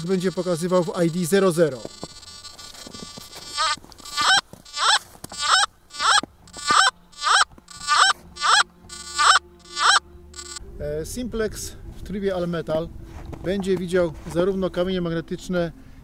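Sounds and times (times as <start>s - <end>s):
metal detector beeping: 0.0s - 10.6s.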